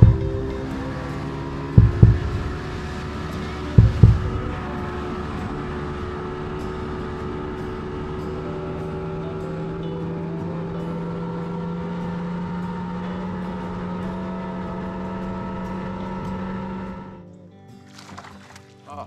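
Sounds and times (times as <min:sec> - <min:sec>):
outboard motor running: 0:00.0 - 0:18.8.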